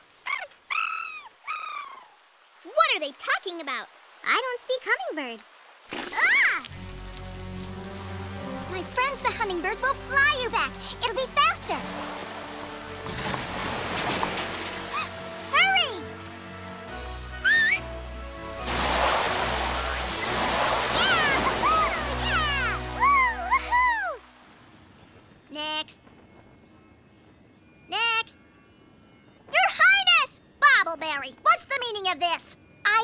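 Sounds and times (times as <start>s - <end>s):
flood water rushing and splashing: 2.3s - 24.9s.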